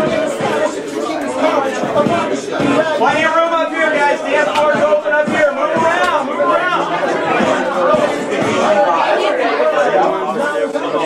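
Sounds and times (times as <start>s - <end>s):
students chattering: 0.0s - 11.0s.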